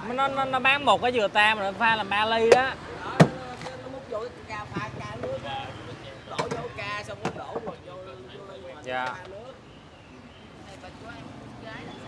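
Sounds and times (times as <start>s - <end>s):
machete chopping coconut: 3.2s - 3.7s.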